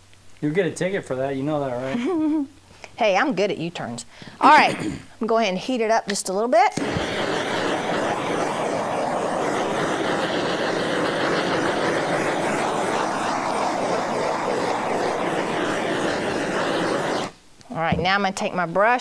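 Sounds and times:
heat gun blowing: 0:06.8 - 0:17.4.

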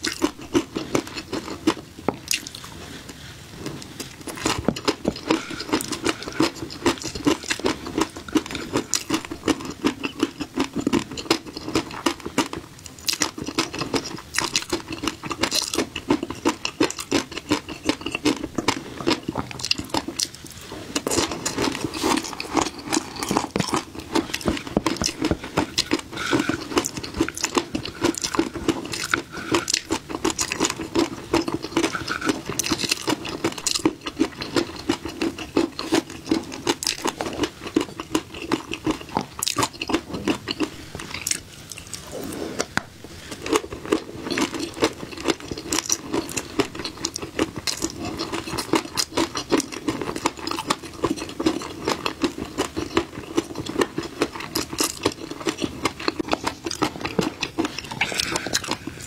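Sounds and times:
crunchy chewing of fish roe: 0:00.0 - 0:59.0.

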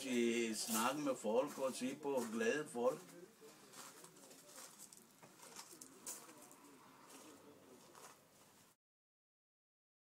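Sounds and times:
faint low murmur: 0:00.0 - 0:08.8.

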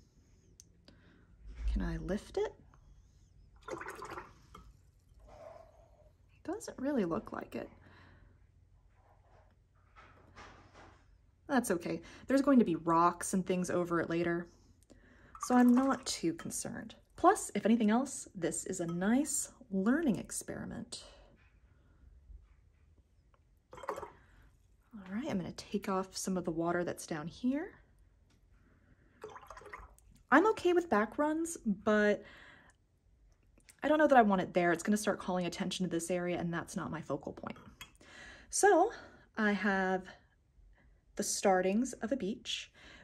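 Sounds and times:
brush swishing in water: 0:23.8 - 0:24.1, 0:29.2 - 0:30.0.

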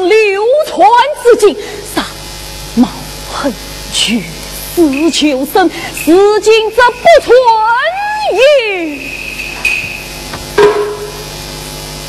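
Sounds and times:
sharp ringing knock: 0:09.6 - 0:11.3.

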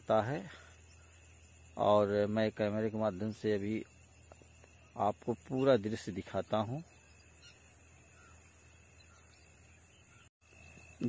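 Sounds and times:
faint short bird calls: 0:06.9 - 0:11.0.

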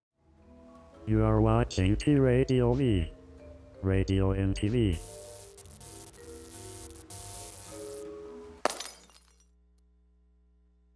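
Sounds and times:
glass breaking crash: 0:08.6 - 0:09.4.

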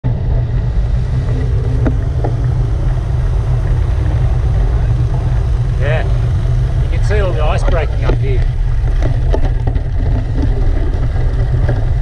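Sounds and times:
rolling road noise: 0:00.0 - 0:12.0
wind buffeting microphone: 0:00.0 - 0:12.0.

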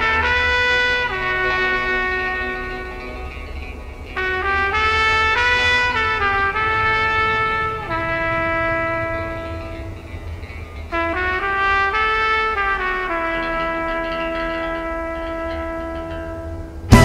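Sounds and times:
slow solo trumpet melody: 0:00.0 - 0:17.0.

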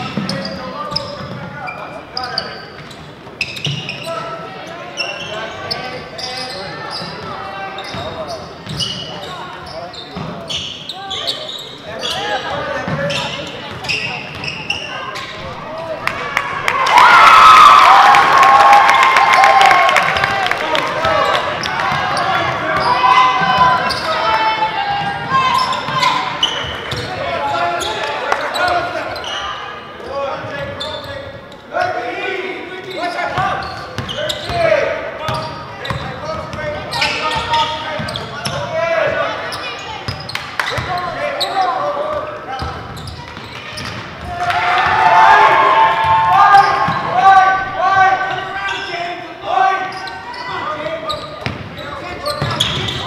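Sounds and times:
echoing voices: 0:03.9 - 0:53.0
crowd shouting: 0:44.2 - 0:48.6.

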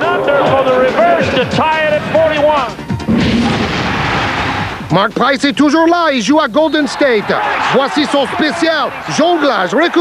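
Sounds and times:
man's voice: 0:00.0 - 0:02.8, 0:04.9 - 0:10.0.

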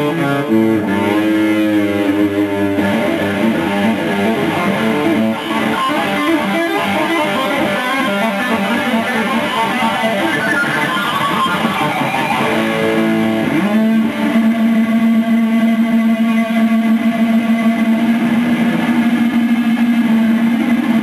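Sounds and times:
electric guitar solo: 0:00.0 - 0:21.0.

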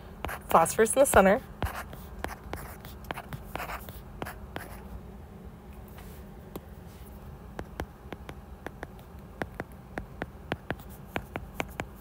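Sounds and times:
stylus tapping on tablet screen: 0:07.6 - 0:12.0.

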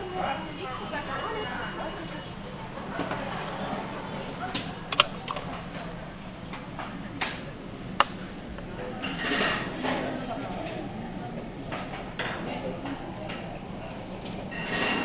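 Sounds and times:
restaurant chatter: 0:00.0 - 0:15.0.

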